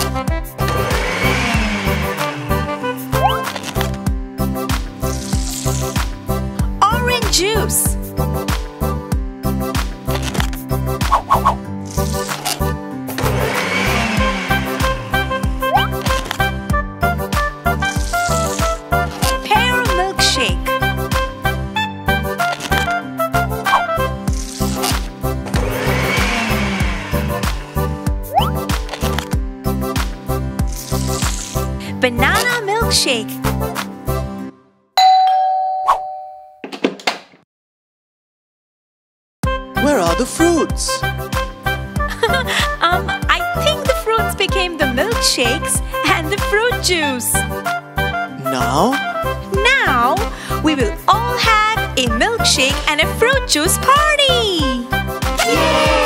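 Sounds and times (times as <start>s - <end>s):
cartoon electric blender: 0.0s - 4.0s, 5.0s - 6.1s, 11.8s - 16.8s, 17.4s - 21.2s, 22.4s - 23.0s, 23.6s - 33.0s, 42.1s - 47.4s, 53.7s - 56.0s
upbeat background music: 0.0s - 34.5s, 39.5s - 56.0s
cartoon bell ding: 35.0s - 36.6s.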